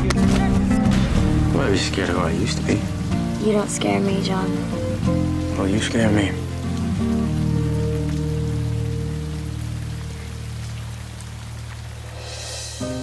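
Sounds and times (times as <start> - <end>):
steady rain-like hiss: 0.0 - 13.0.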